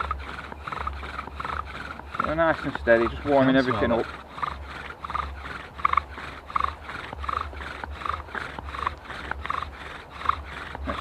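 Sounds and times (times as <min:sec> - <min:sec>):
bow drill spindle squeaking: 0:00.0 - 0:11.0.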